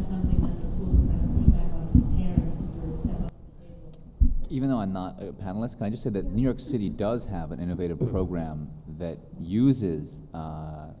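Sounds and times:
low thumps: 0.0 - 3.3, 4.1 - 4.6.

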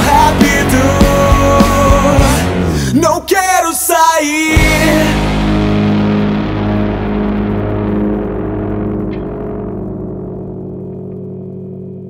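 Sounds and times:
distorted electric guitar and bass chord: 0.0 - 3.3, 4.5 - 12.0.

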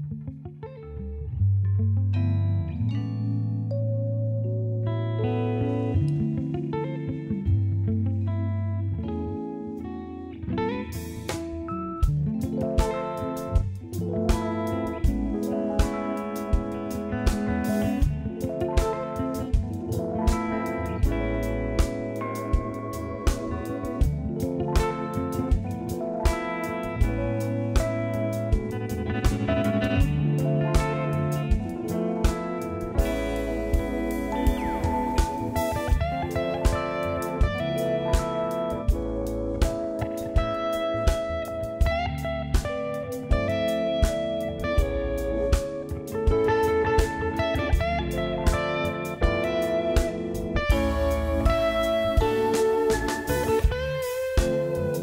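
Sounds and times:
electric bass: 0.0 - 55.0
electric guitar chords: 0.0 - 55.0
keyboard: 0.0 - 55.0
drum kit steady beat: 10.9 - 55.0.

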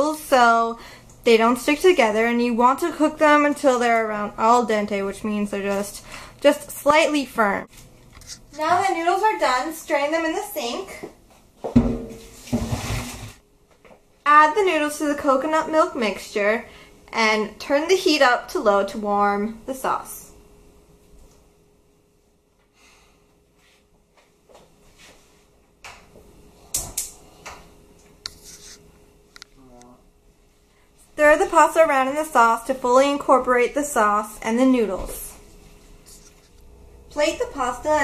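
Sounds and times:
faint steady hum: 0.0 - 12.5, 13.1 - 38.0
colander and skillet knocks: 11.7 - 13.0
water pouring into a colander: 12.3 - 13.4.

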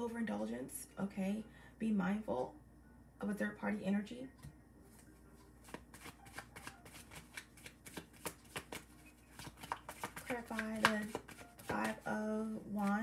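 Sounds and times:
cards being shuffled: 5.0 - 12.1.

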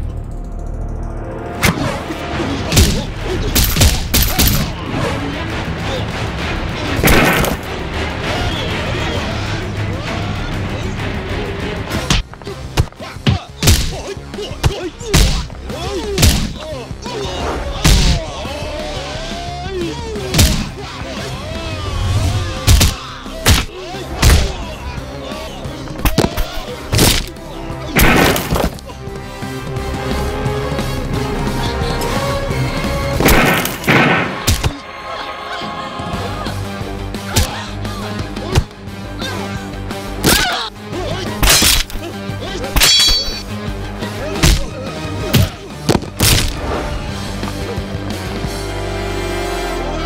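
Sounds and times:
dramatic background music: 0.0 - 50.0
punch and impact hits: 2.7 - 4.7, 7.0 - 7.7, 12.1 - 14.0, 14.6 - 15.5, 16.2 - 16.6, 17.8 - 18.2, 20.3 - 20.7, 22.7 - 24.6, 26.0 - 27.3, 28.0 - 28.8, 33.2 - 34.8, 44.4 - 44.7, 45.3 - 46.6.

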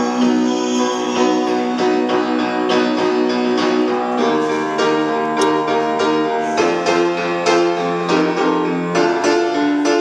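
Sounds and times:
upright piano chords: 0.0 - 10.0.

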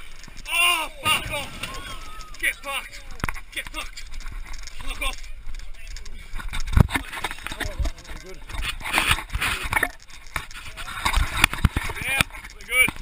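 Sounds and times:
people shouting excitedly: 0.5 - 3.3
heavy thumps: 1.0 - 2.5.

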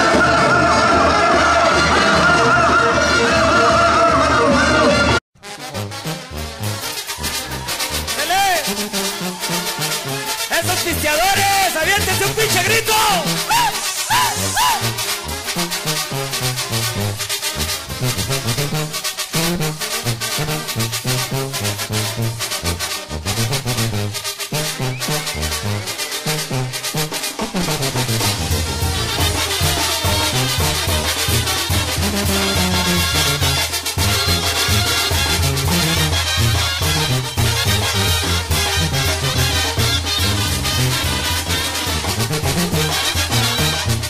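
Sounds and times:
brass band music: 0.0 - 44.0.

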